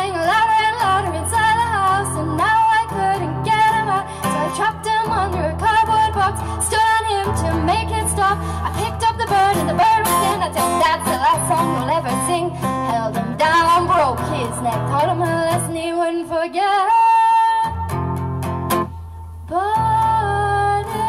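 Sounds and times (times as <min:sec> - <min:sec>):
strummed acoustic guitar: 0:00.0 - 0:15.9, 0:17.7 - 0:19.2
woman singing: 0:00.0 - 0:18.0, 0:19.5 - 0:21.0.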